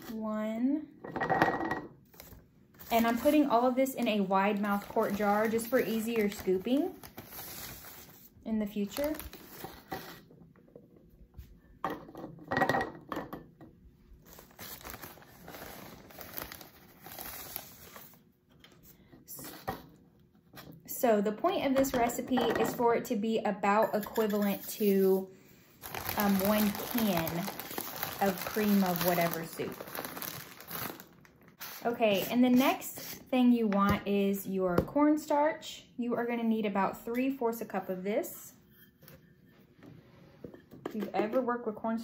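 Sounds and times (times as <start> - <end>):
plastic bag crinkling: 2.2 - 9.9, 14.2 - 18.2, 25.8 - 32.2.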